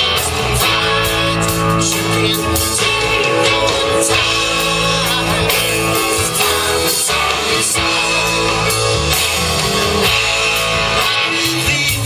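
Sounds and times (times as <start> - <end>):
bass guitar: 0.0 - 12.0
drums: 0.0 - 12.0
electric guitars: 0.0 - 12.0
keyboards: 0.0 - 12.0.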